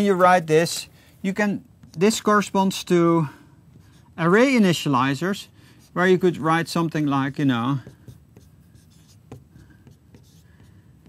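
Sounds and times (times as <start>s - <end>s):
marker scratching on whiteboard: 5.8s - 11.0s.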